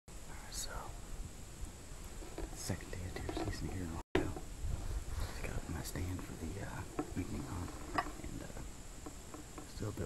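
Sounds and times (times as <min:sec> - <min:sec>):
man whispering: 0:00.3 - 0:01.1, 0:02.6 - 0:04.4, 0:05.2 - 0:08.6.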